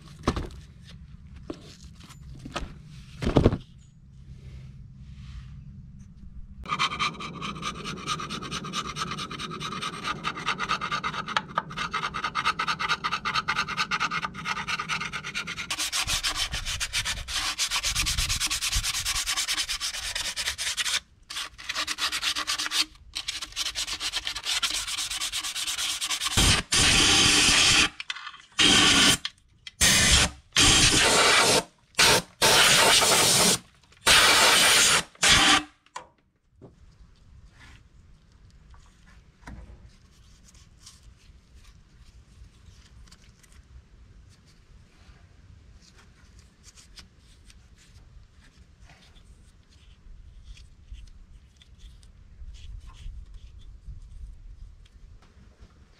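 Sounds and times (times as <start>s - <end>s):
hand tool scraping cast iron: 6.7s - 18.7s, 28.5s - 35.6s
loud rasping bursts: 6.7s - 28.0s, 28.6s - 35.8s.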